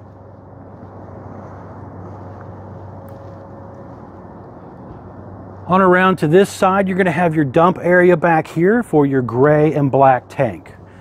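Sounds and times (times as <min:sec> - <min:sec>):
low outdoor hum: 0:00.0 - 0:11.0.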